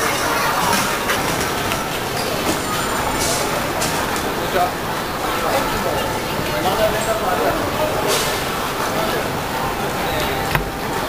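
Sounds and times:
indistinct voices of passers-by: 0.0s - 11.0s.

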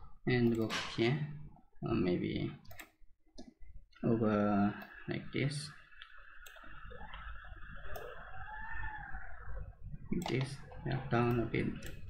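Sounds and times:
computer mouse clicks: 0.4s - 0.8s, 2.6s - 3.6s, 6.0s - 8.1s, 10.2s - 10.6s, 11.2s - 12.0s.

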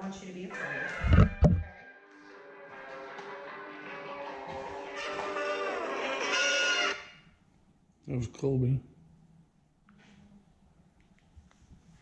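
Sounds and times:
phone ringtone guitar tune: 0.5s - 7.1s.

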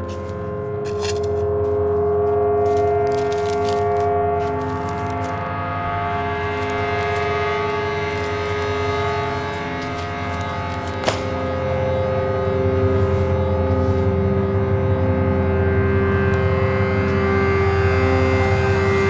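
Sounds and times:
sustained droning chord: 0.0s - 19.0s.

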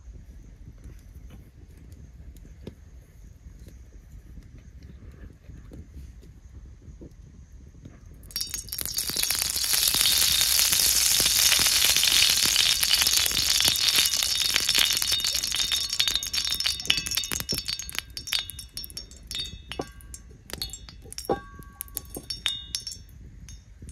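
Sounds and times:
oil pouring onto iron pan: 8.3s - 23.0s.

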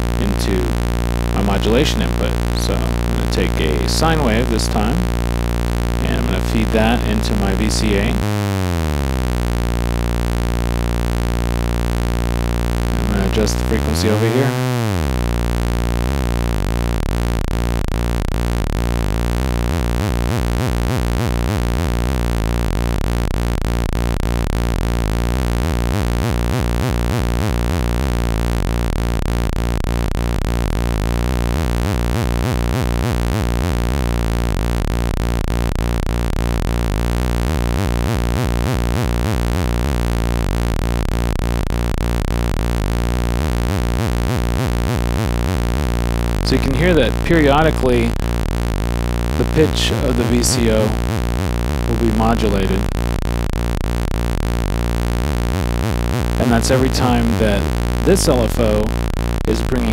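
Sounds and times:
low oscillator tone with pitch wobble: 0.0s - 59.9s.

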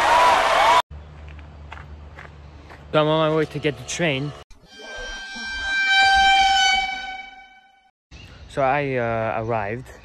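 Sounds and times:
train whistle: 4.7s - 7.9s.

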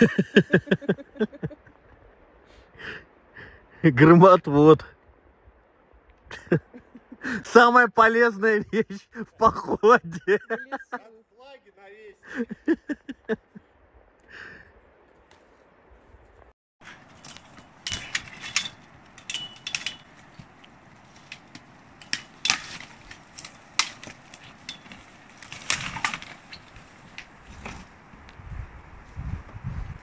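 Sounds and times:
twigs snapping and crackling: 16.8s - 28.4s
rustling brush: 16.8s - 30.0s.

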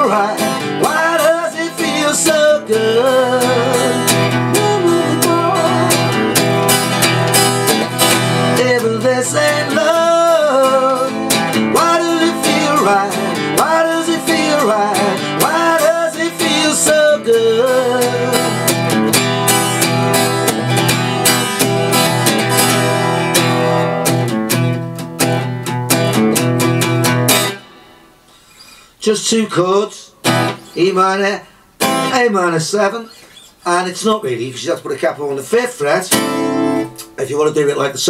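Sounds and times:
wordless singing: 0.0s - 6.8s, 8.2s - 18.9s
acoustic guitar strumming: 0.0s - 37.9s.

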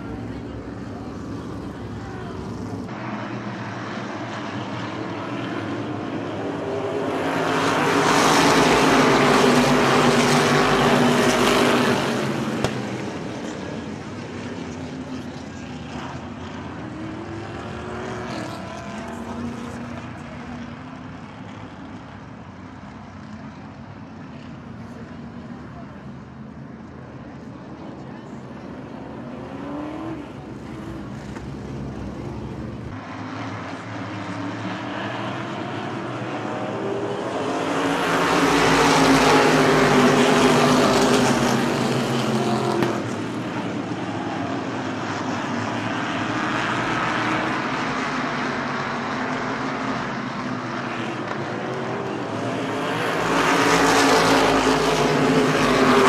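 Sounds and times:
race car engines passing: 0.0s - 56.0s.

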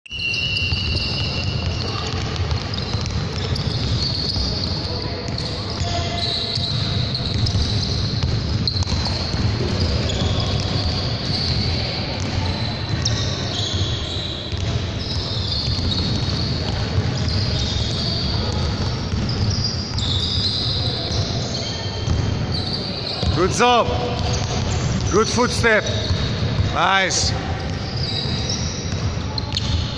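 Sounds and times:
basketballs bouncing on wood floor: 0.6s - 13.9s, 14.5s - 25.1s, 25.9s - 29.9s.

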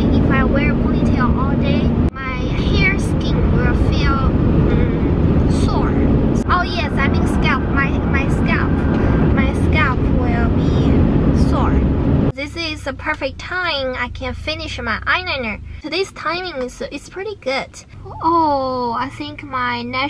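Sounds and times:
car cabin road and engine noise: 0.0s - 20.0s.

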